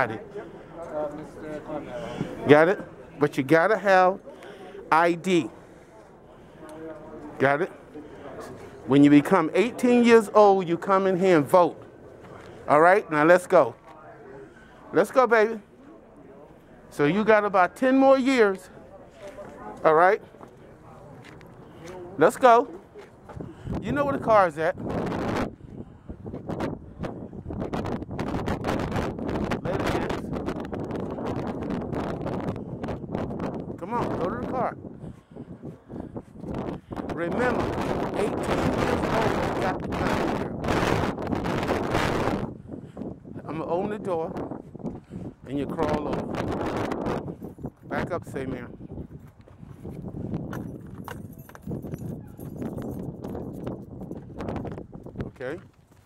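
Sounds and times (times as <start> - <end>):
footsteps on pavement: 11.6 - 12.7, 18.9 - 23.8, 34.9 - 37.1, 44.4 - 45.4, 48.8 - 56.0
wind buffeting microphone: 23.2 - 56.0.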